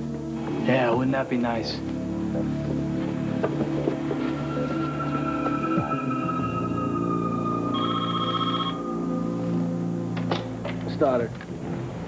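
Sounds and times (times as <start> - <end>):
low soundtrack music chords: 0.0 - 12.0
electronic telephone ring: 7.7 - 9.1.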